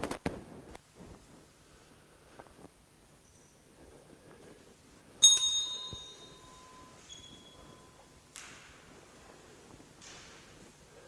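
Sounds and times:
faint bell ding: 5.2s - 8.2s
small metal bell ringing: 5.2s - 8.2s.

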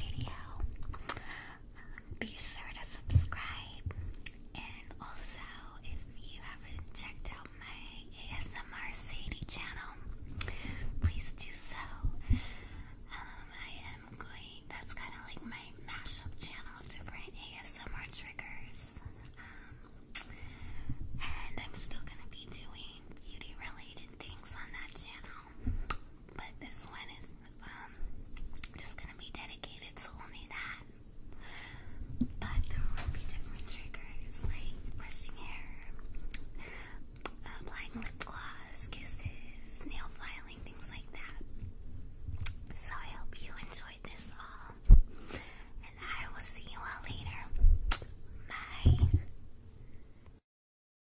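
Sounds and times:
woman whispering softly: 0.0s - 0.8s, 1.8s - 3.9s, 4.5s - 10.2s, 10.8s - 12.2s, 13.0s - 19.3s, 21.2s - 25.6s, 26.4s - 28.1s, 28.7s - 30.9s, 32.3s - 36.0s, 37.3s - 41.6s, 42.7s - 44.9s, 45.8s - 47.6s, 48.5s - 49.3s.

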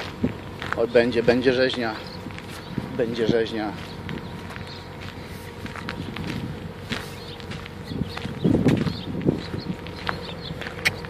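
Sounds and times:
footsteps crunching on rough ground: 0.0s - 11.0s.

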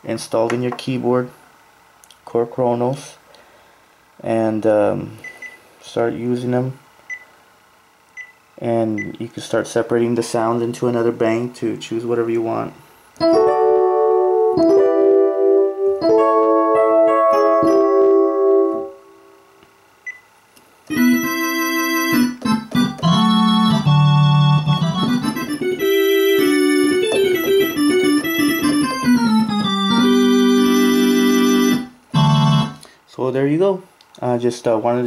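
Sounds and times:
electric piano chords: 13.2s - 19.4s, 20.9s - 32.9s
organ chords with bass line: 13.2s - 19.4s, 20.9s - 32.9s.

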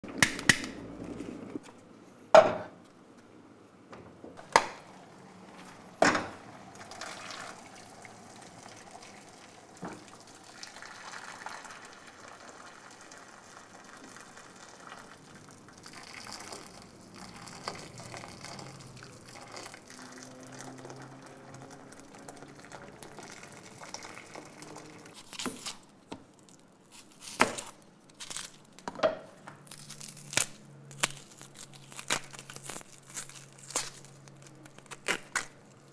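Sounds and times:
water running into container: 6.6s - 25.2s.

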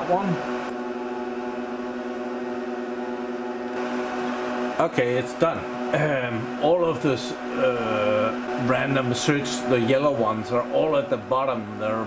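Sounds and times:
server cooling fans humming: 0.0s - 12.0s.

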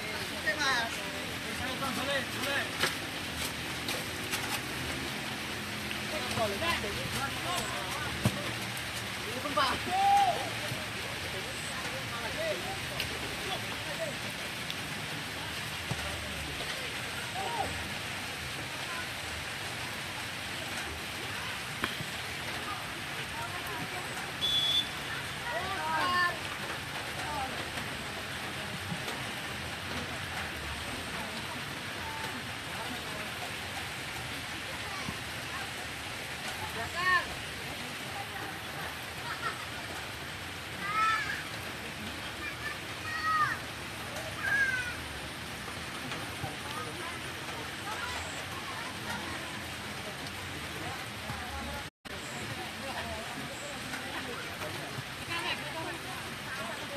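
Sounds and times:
light rain on wet ground: 0.0s - 56.9s
steady outdoor hiss: 0.0s - 56.9s.

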